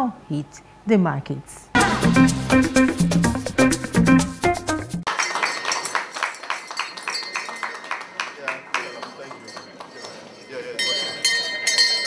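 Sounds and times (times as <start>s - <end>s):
brass hand bell ringing: 5.2s - 8.0s, 8.7s - 12.0s.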